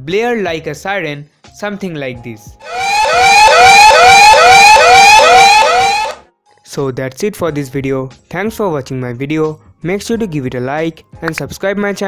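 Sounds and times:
electronic alarm siren sweeping: 0:02.6 - 0:06.2.

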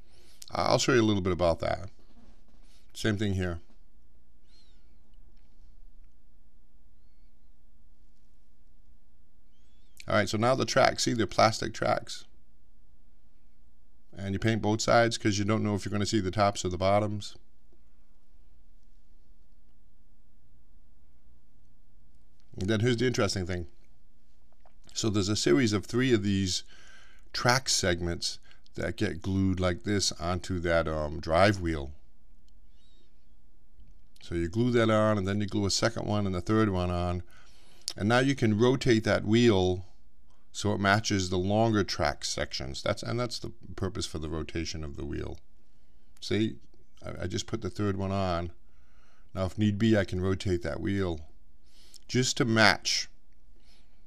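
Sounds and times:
faint high-pitched chirps: 0:04.3 - 0:05.7, 0:06.8 - 0:07.7, 0:09.4 - 0:10.1, 0:32.5 - 0:33.5.

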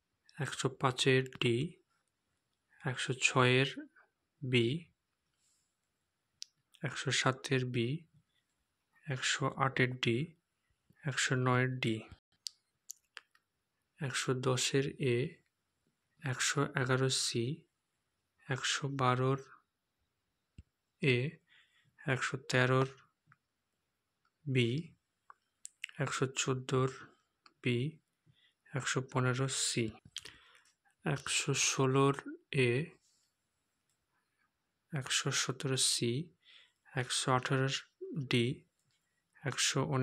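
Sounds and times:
man speaking: 0:00.4 - 0:01.8, 0:02.8 - 0:04.9, 0:06.8 - 0:08.1, 0:09.0 - 0:10.4, 0:11.0 - 0:12.2, 0:14.0 - 0:15.4, 0:16.2 - 0:17.6, 0:18.5 - 0:19.6, 0:21.0 - 0:21.4, 0:22.0 - 0:23.0, 0:24.5 - 0:25.0, 0:25.7 - 0:28.0, 0:28.7 - 0:30.3, 0:31.0 - 0:33.0, 0:34.9 - 0:38.6, 0:39.4 - 0:40.0.

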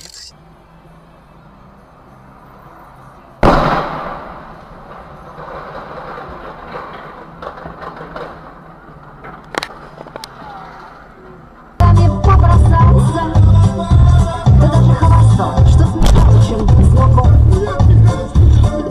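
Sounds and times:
music: 0:00.3 - 0:03.9, 0:11.8 - 0:18.9
loud crash: 0:16.0 - 0:17.5.

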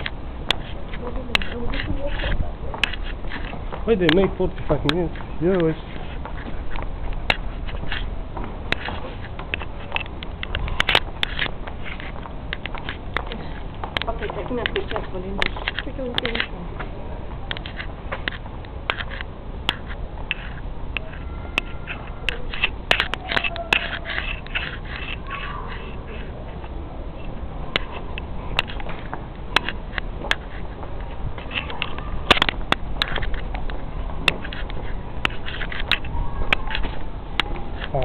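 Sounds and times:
footsteps on gravel: 0:00.0 - 0:37.1
handling noise: 0:00.0 - 0:38.0.

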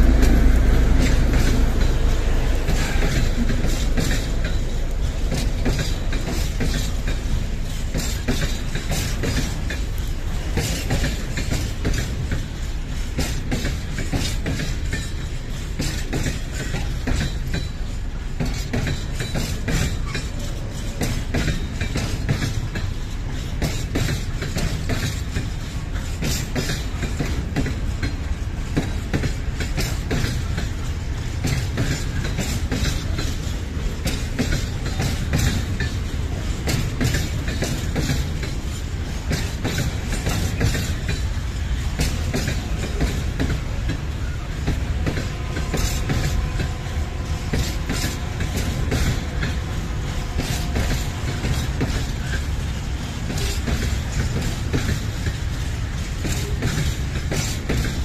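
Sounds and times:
freight train rumbling past: 0:00.0 - 0:58.0
wheels clattering over rail joints: 0:00.0 - 0:58.0.

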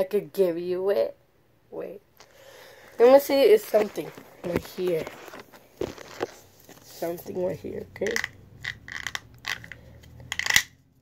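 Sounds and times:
small objects rattling: 0:08.0 - 0:10.7.

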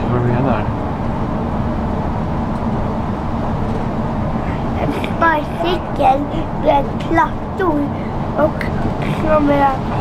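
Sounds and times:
bus engine and road noise: 0:00.0 - 0:10.0.

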